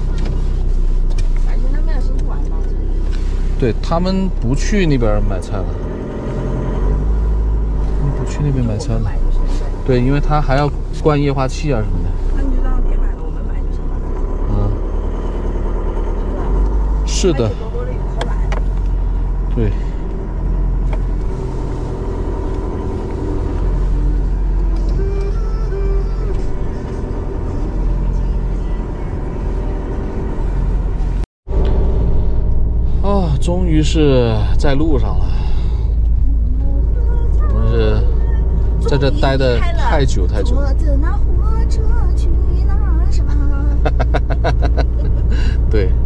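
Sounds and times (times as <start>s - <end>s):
engine and road noise rumble: 0.0s - 46.0s.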